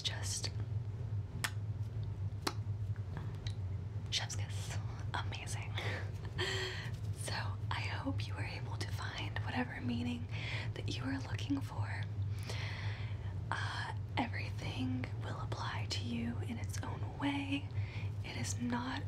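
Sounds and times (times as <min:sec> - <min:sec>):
woman whispering: 0:00.0 - 0:00.6, 0:04.1 - 0:06.2, 0:06.8 - 0:12.2, 0:13.5 - 0:19.0
low hum: 0:00.0 - 0:19.0.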